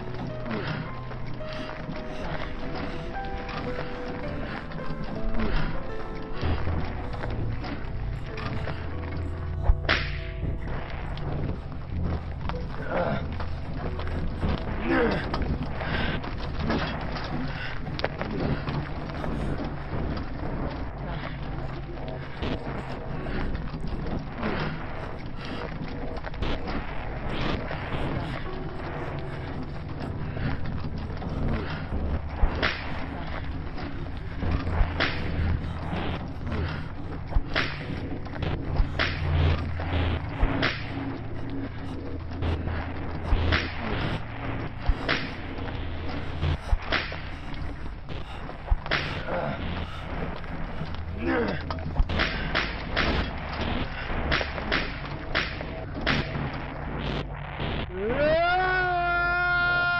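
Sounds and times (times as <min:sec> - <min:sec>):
low sustained drone: 0:00.0 - 0:59.9
sharp cracks: 0:00.0 - 0:59.9.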